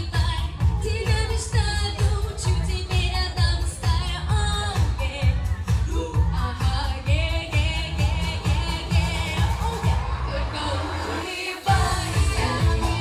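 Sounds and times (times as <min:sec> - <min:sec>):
backing track with bass beat: 0:00.0 - 0:13.0
girls singing pop song: 0:00.0 - 0:13.0.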